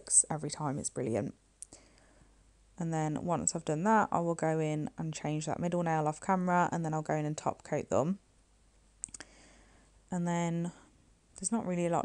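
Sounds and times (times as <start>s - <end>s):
small sharp clicks: 9.0s - 9.3s.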